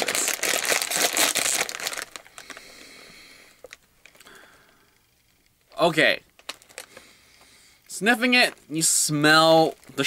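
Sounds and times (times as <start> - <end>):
plastic snack bag crinkling: 0.0 - 2.8, 3.6 - 4.4, 5.7 - 7.1.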